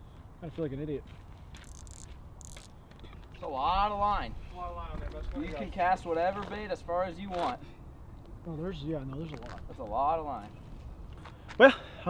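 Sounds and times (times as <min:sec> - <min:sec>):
spinning reel ratcheting: 0:01.6 - 0:02.7.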